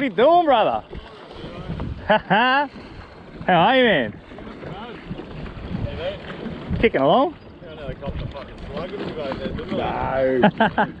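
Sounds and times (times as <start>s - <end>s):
choppy water against boat: 0.0s - 11.0s
wind buffeting microphone: 0.1s - 11.0s.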